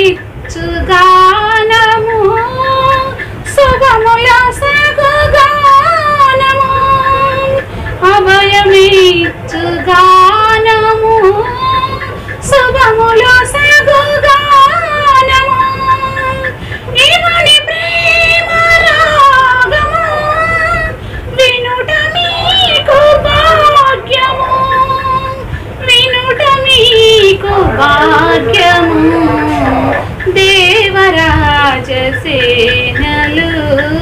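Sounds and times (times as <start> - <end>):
woman singing: 0.0 - 34.0.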